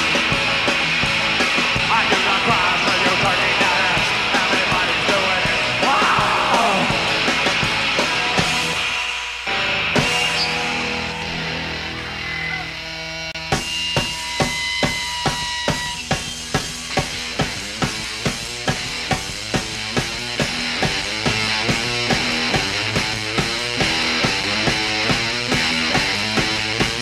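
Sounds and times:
steady drum beat: 0:00.0 - 0:10.4, 0:13.4 - 0:27.0
ringing guitar tones: 0:00.0 - 0:19.3.

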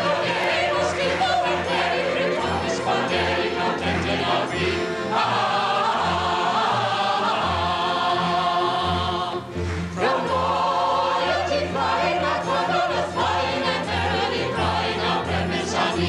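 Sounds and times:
chorus singing: 0:00.0 - 0:16.0
pit orchestra accompaniment: 0:00.0 - 0:16.0.

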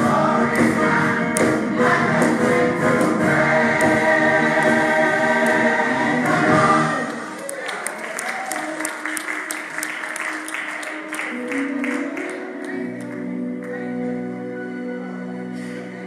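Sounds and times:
gospel choir singing: 0:00.0 - 0:07.4
keyboard: 0:00.0 - 0:07.9, 0:08.6 - 0:16.0
rhythmic hand-clapping: 0:00.0 - 0:13.8.

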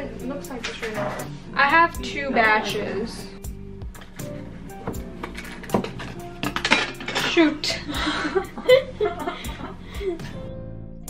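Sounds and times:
background music: 0:00.0 - 0:11.0
metal utensils clinking: 0:00.5 - 0:01.3, 0:05.2 - 0:07.9.

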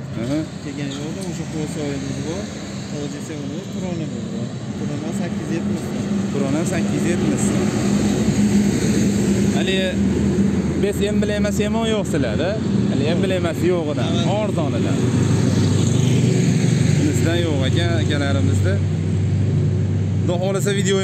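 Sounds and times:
voices talking: 0:00.0 - 0:08.0, 0:10.8 - 0:18.9
truck engine driving past: 0:00.0 - 0:21.0.

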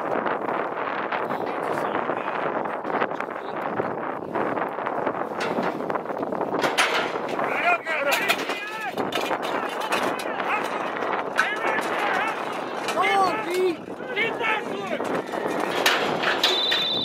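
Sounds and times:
wind buffeting microphone: 0:00.0 - 0:17.0
onlookers yelling excitedly: 0:07.5 - 0:15.6.

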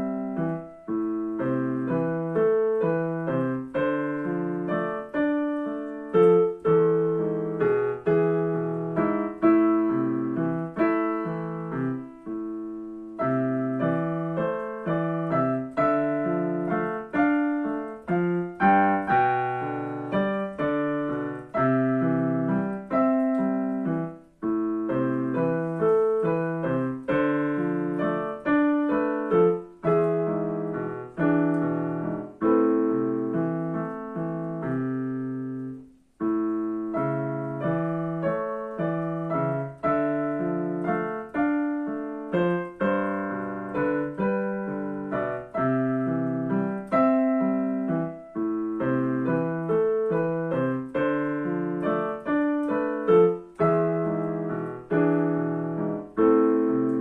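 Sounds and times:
digital piano melody over chords: 0:00.0 - 0:57.0.

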